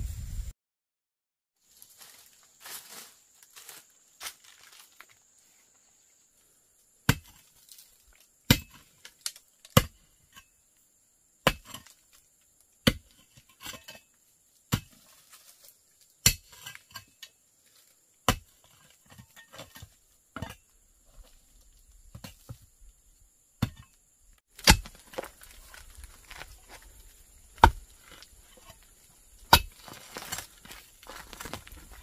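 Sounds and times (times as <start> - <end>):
metal hoe striking stony soil: 7.0 - 10.6, 11.4 - 12.2, 12.8 - 17.4, 18.2 - 21.5, 22.1 - 22.7, 23.6 - 32.0
stones clinking and scraping: 24.6 - 32.0.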